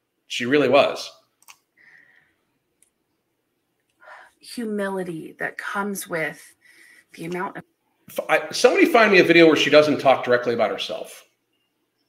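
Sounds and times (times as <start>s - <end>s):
man speaking: 0.3s - 1.3s, 8.1s - 11.2s.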